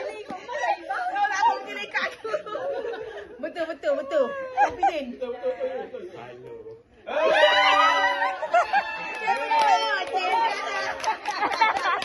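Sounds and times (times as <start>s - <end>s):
group chatter: 0.0s - 12.0s.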